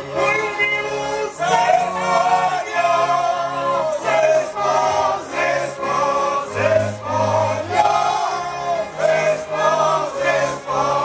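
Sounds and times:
folk band playing: 0.0s - 11.0s
men singing together: 0.1s - 11.0s.

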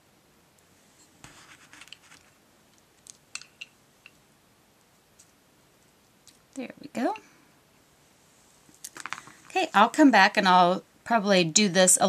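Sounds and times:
paper rustling and scraping: 1.2s - 2.4s.

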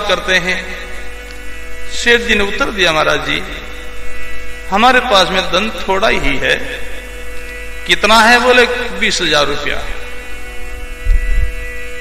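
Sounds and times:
steady hum of held tones: 0.0s - 12.0s.

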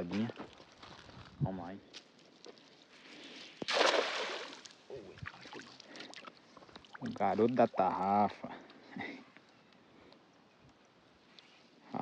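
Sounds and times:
cast net splashing on water: 3.6s - 7.2s.

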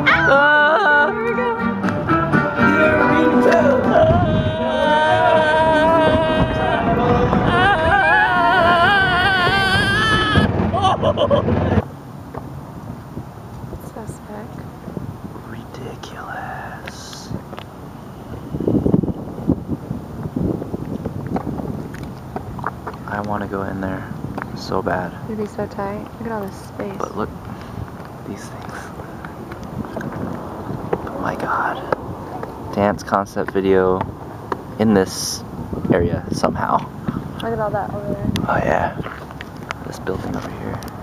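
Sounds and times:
background music with sliding melody: 0.0s - 6.8s
indistinct voices: 0.0s - 11.9s, 15.4s - 17.4s, 23.1s - 30.2s, 30.9s - 34.1s, 34.8s - 39.2s
wind buffeting microphone: 2.9s - 41.0s.

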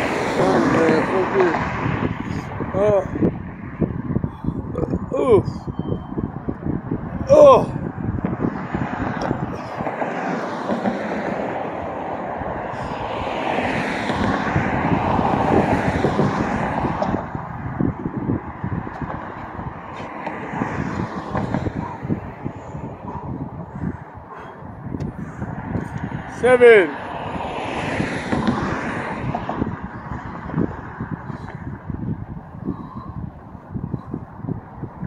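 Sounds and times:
vehicle passing: 0.0s - 4.7s, 7.8s - 35.0s
traffic hum: 0.0s - 35.0s
wind rumbling on microphone: 0.0s - 35.0s.

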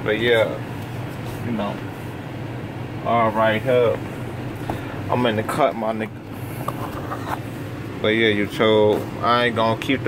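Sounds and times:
car cabin engine hum: 0.0s - 10.0s.

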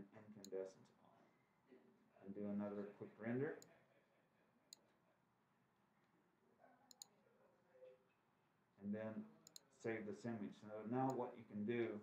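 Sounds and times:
computer mouse clicks: 6.9s - 7.1s, 9.4s - 9.7s.

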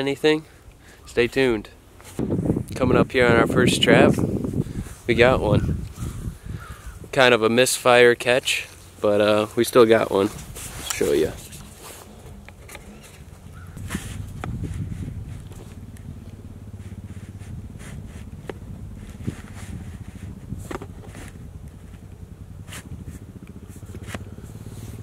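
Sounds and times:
steady low drone: 2.2s - 25.0s
brush rustling and snapping: 8.6s - 24.4s.

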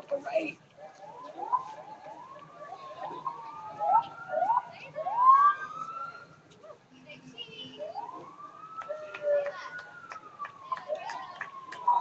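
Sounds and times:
vehicle siren whooping: 0.9s - 6.4s, 7.8s - 12.0s.

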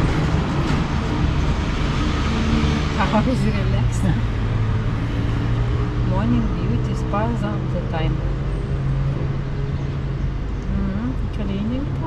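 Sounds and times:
low engine hum: 0.0s - 12.0s
street traffic noise: 0.0s - 12.0s.

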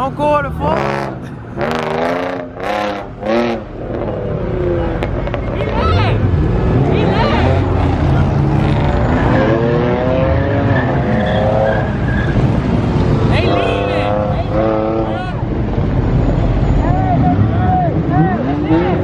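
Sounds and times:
car engines revving: 0.0s - 19.0s.

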